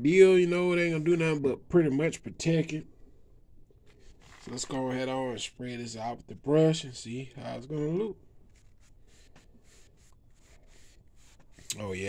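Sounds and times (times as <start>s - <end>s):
paintbrush strokes on rubber: 8.5s - 12.0s.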